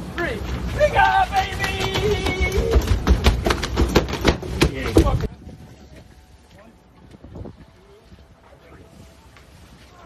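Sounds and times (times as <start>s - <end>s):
men shouting: 0.8s - 3.0s.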